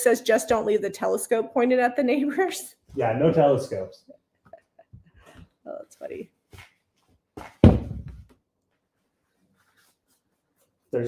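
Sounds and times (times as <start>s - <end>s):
fabric and paper rustling: 6.1s - 10.9s.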